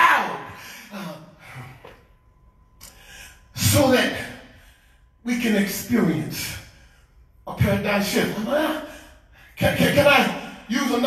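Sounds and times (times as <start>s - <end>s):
man speaking into a microphone: 3.5s - 4.5s, 5.2s - 6.8s, 7.5s - 11.0s.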